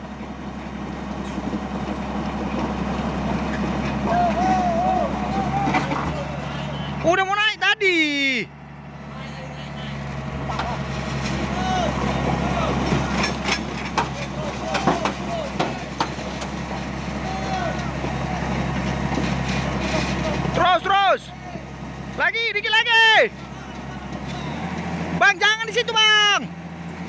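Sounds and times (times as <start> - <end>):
heavy diesel engine under load: 0.0 - 27.0
faint shouts: 4.1 - 7.0, 11.5 - 12.8, 17.2 - 18.5
sharp knocks: 12.9 - 16.6.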